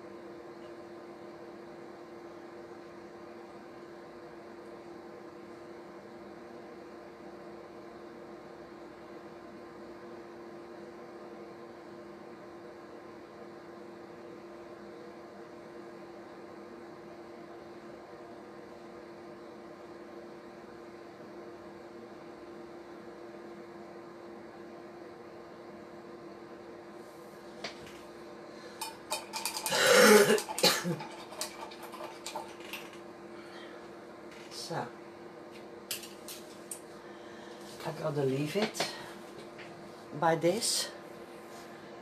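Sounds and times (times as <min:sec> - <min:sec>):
low hum with faint hiss: 0:00.0 - 0:42.0
person clearing throat: 0:29.7 - 0:31.1.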